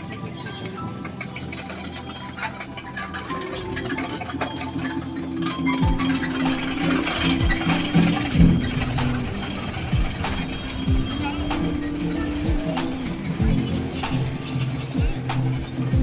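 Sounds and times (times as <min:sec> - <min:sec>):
melody: 0:00.0 - 0:16.0
metal prayer wheels rattling: 0:00.0 - 0:16.0.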